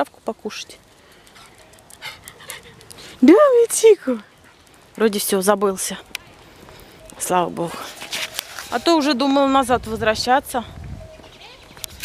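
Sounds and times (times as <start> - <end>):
small dog panting: 1.2 - 3.2.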